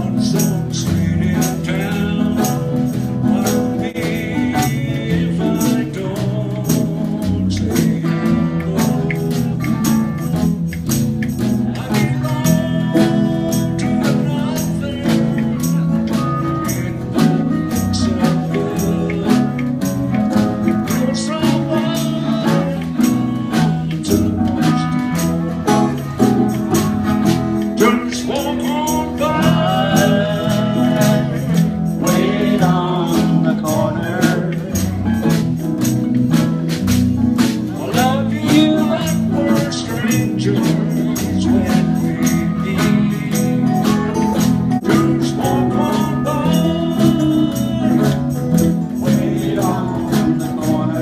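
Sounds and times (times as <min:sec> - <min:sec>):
person singing: 0:00.0 - 0:36.2, 0:37.4 - 0:51.0
bass guitar lines: 0:00.0 - 0:51.0
jingling beat: 0:00.0 - 0:51.0
live band playing: 0:00.0 - 0:51.0.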